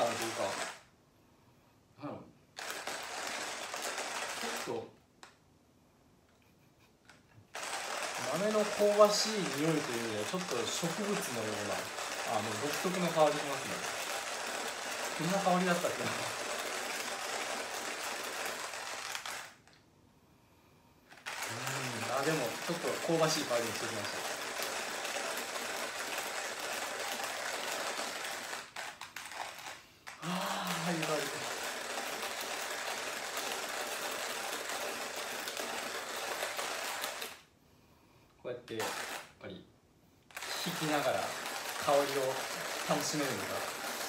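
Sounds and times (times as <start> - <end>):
hand coffee mill grinding beans: 0.0 - 0.8, 2.6 - 5.3, 7.1 - 19.8, 21.1 - 37.5, 38.7 - 39.4, 40.3 - 44.0.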